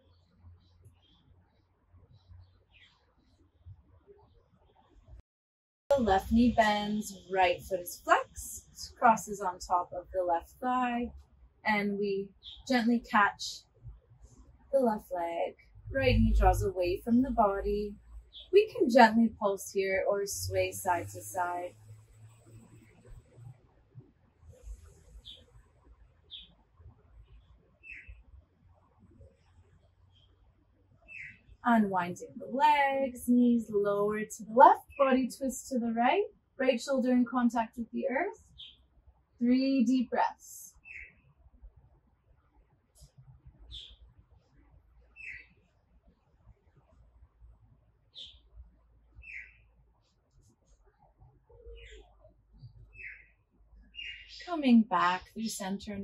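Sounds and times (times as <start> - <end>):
faint low rumble: 5.9 - 26.1
faint bird chirps: 45.1 - 45.6, 49.2 - 49.7, 51.5 - 54.5
birds chirping: 49.2 - 49.7, 53.9 - 56.0.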